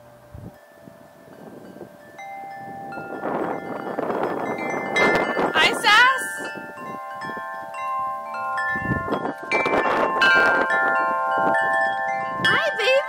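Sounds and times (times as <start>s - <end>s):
wind chimes ringing: 0.0s - 13.0s
wind noise: 0.0s - 13.0s.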